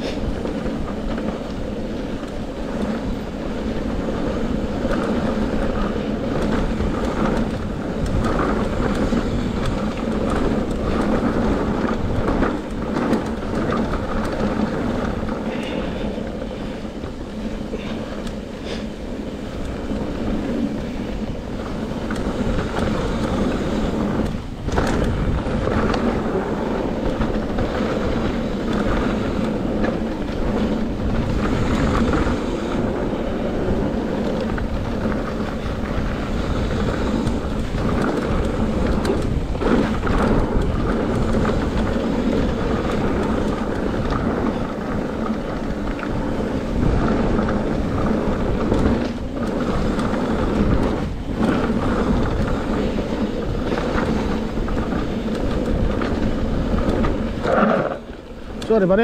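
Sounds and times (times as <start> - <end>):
bike rattling: 0.0 - 59.0
bike tyres on gravel: 0.0 - 59.0
wind rumbling on microphone: 0.0 - 59.0.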